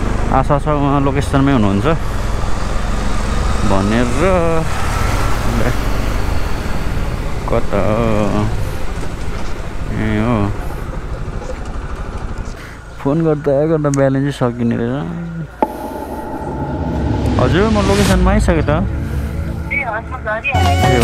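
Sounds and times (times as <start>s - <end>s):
wind rumble: 15.6s - 19.5s.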